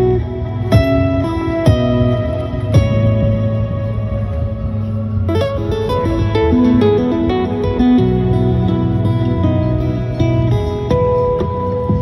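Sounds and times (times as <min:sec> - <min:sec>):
lap steel guitar melody: 0:00.0 - 0:12.0.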